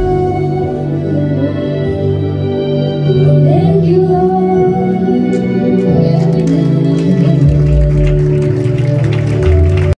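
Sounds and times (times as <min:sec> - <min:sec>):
congregation clapping: 0:05.8 - 0:10.0.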